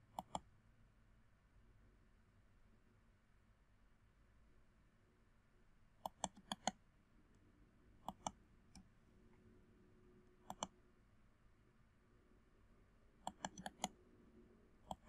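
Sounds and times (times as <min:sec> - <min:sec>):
computer mouse clicking: 0:00.1 - 0:00.5, 0:06.0 - 0:06.8, 0:08.0 - 0:08.9, 0:10.4 - 0:10.7, 0:13.2 - 0:14.0.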